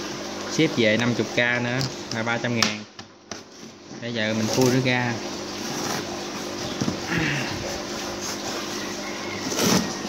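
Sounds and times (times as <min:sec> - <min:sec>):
steady low hum: 0:00.0 - 0:09.0.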